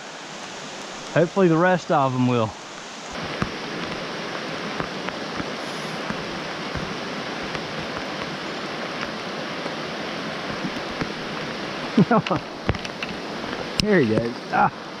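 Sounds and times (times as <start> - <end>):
rain falling on creek: 0.0 - 15.0
water rushing over riffles: 0.0 - 15.0.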